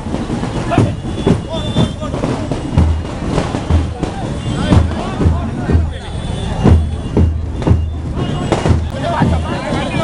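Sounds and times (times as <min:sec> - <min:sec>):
crowd voices and shouting: 0:00.0 - 0:10.0
marching band drums: 0:00.0 - 0:10.0.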